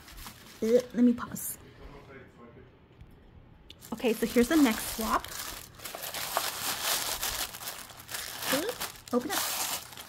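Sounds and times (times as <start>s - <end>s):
gift bag and tissue paper crinkling: 0.0s - 1.3s, 3.7s - 10.0s.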